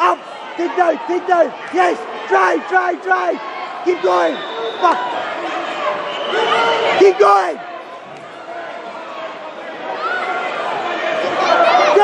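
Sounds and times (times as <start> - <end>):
voices shouting over one another: 0.0 - 7.8, 8.5 - 12.0.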